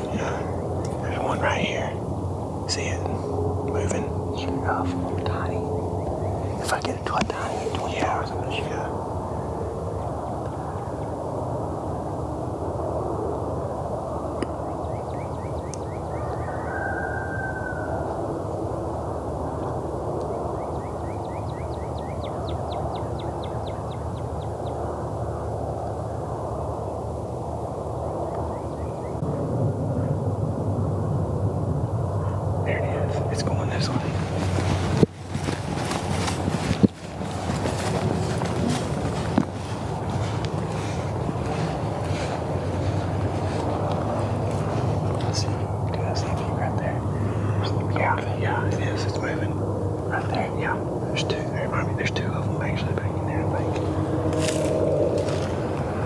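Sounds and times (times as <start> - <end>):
hushed whispering voices: 0.0 - 9.2, 32.2 - 35.0, 38.0 - 54.5
steady low rumble: 0.0 - 56.0.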